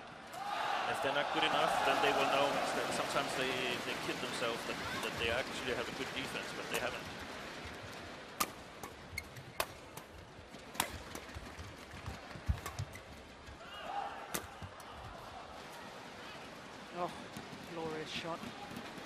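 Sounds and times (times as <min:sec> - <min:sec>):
arena background noise: 0:00.0 - 0:19.0
racket hitting shuttlecock: 0:08.4 - 0:11.3.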